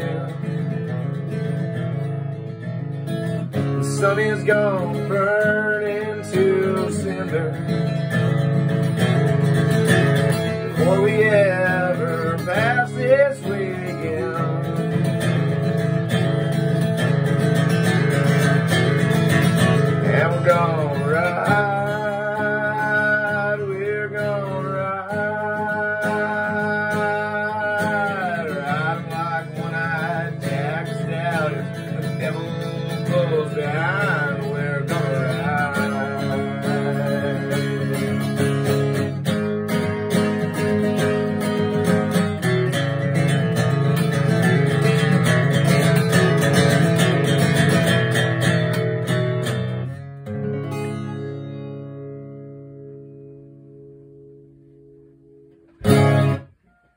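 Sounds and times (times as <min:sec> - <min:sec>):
acoustic guitar strumming: 0:00.0 - 0:56.9.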